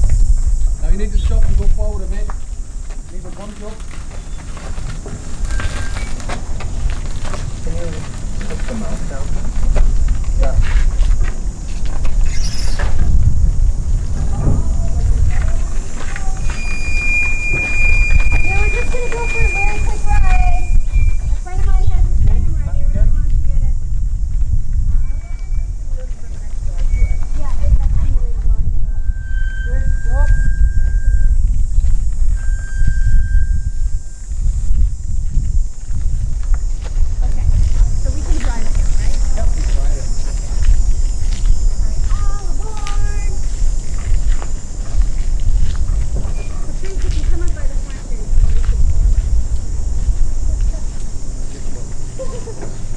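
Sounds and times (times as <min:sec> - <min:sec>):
indistinct voices: 0:00.0 - 0:23.9, 0:24.8 - 0:31.6, 0:37.1 - 0:52.9
steady low rumble: 0:00.0 - 0:52.9
metal squeals from wheels: 0:04.1 - 0:06.3, 0:12.2 - 0:13.0, 0:16.3 - 0:21.4, 0:25.0 - 0:25.8, 0:26.8 - 0:27.4, 0:28.8 - 0:31.4, 0:32.3 - 0:34.3, 0:46.2 - 0:46.7.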